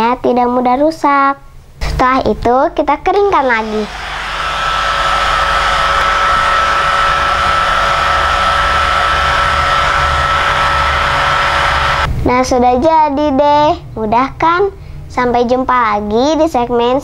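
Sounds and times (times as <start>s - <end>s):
hair dryer running: 3.5s - 12.1s.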